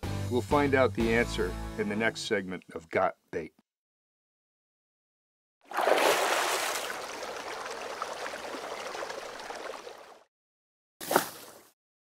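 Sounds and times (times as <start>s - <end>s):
bubbling fizzing water: 5.7s - 10.2s.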